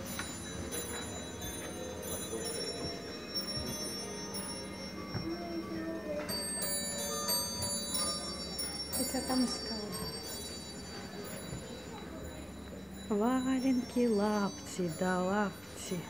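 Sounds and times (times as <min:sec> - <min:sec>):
clock chimes: 0:00.0 - 0:16.0
tinkling music box tune: 0:00.0 - 0:16.0.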